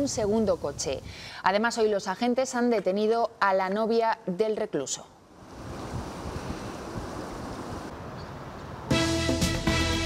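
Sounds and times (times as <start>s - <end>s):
wind buffeting microphone: 0.0s - 1.3s, 5.4s - 8.9s.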